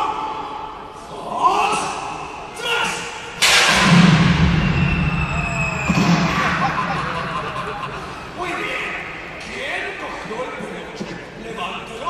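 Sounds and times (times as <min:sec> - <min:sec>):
sudden loud bang: 0:03.4 - 0:08.5
rushing rumbling noise: 0:03.4 - 0:08.7.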